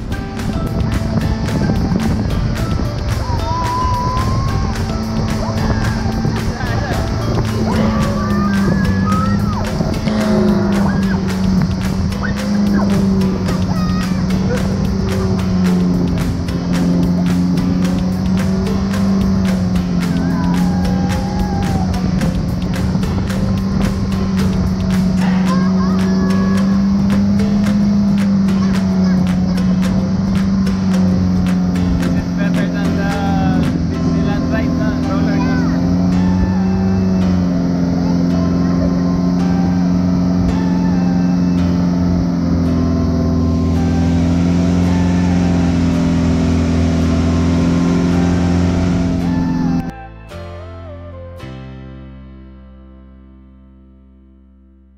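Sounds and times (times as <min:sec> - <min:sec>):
people's voices: 0:00.0 - 0:50.4
boat engine droning: 0:00.0 - 0:51.3.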